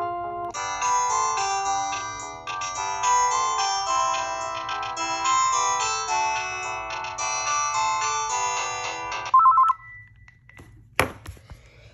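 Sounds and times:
phone ringer melody: 0:00.0 - 0:10.5.

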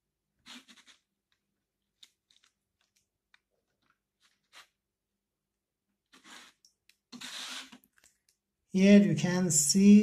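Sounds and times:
faint clicks and rustles: 0:00.6 - 0:04.8.

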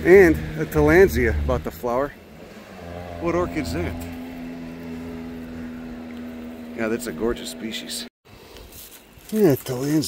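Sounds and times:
low rumble: 0:00.0 - 0:08.1
vehicle engine humming: 0:00.0 - 0:08.1.

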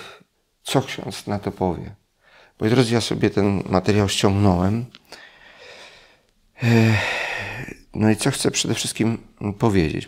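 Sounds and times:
man sighing: 0:05.1 - 0:07.8.

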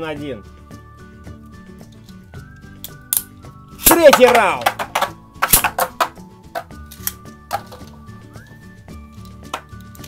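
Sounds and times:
background music: 0:00.0 - 0:10.0
sharp plastic clicks: 0:03.1 - 0:07.9
spinning top clattering in plastic stadium: 0:03.8 - 0:06.8, 0:07.5 - 0:08.0.

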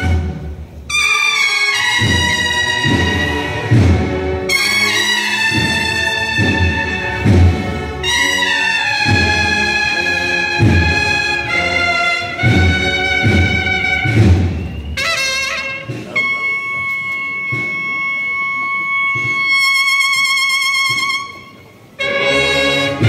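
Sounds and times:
bugles playing in harmony: 0:00.0 - 0:23.0.

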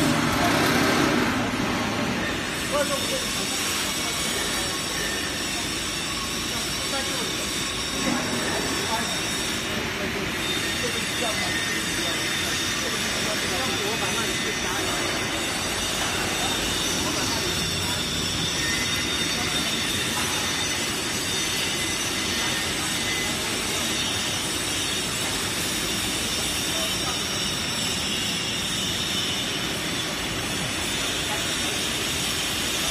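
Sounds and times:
paper slitter machine running: 0:00.0 - 0:02.9.

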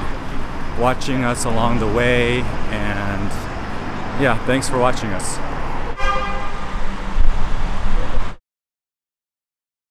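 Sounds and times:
low rumble of traffic: 0:00.0 - 0:08.4
vehicle horn toot: 0:06.0 - 0:06.8.

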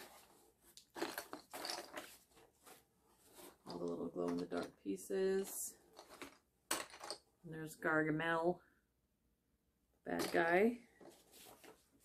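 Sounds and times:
plastic pieces rattling and clicking: 0:00.8 - 0:02.1.

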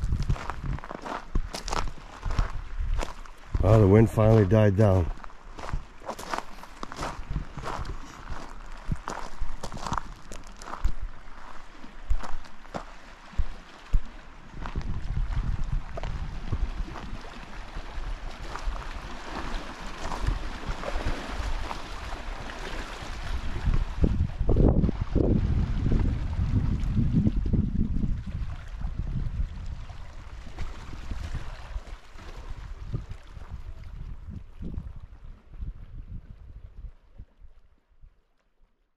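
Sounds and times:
waves lapping on rocks: 0:00.0 - 0:34.1
wind rumbling on microphone: 0:00.0 - 0:38.2.

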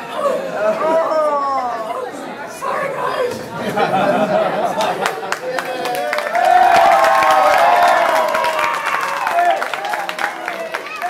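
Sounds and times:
children cheering and laughing: 0:00.1 - 0:11.0
crowd clapping: 0:04.6 - 0:11.0.

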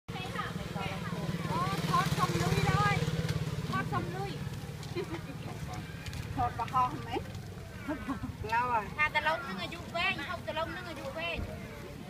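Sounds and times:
small engine idling: 0:00.1 - 0:08.2
people's voices: 0:00.1 - 0:12.0.

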